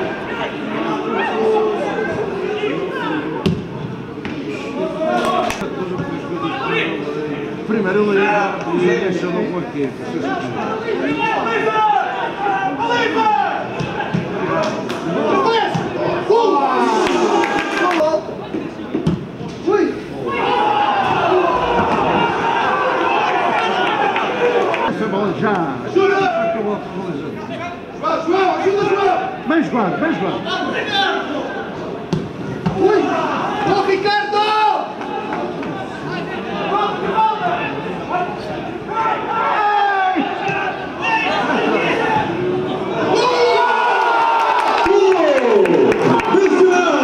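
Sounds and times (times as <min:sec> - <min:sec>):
players shouting: 0:10.2 - 0:18.2, 0:19.6 - 0:24.9, 0:27.5 - 0:47.0
football commentator talking: 0:24.9 - 0:31.3.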